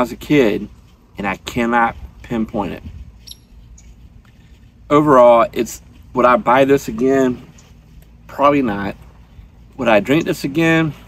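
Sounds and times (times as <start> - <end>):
man talking: 0.0 - 2.9, 4.9 - 7.6, 8.2 - 9.0, 9.7 - 11.0.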